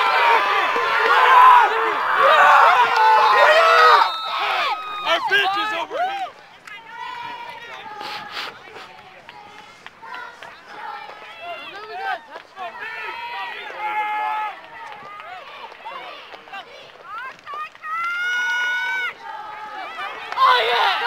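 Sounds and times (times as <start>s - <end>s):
people talking and calling out: 0.0s - 21.0s.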